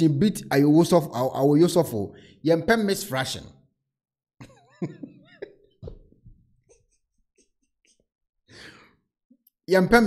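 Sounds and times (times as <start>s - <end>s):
man chuckling: 4.4s - 8.1s.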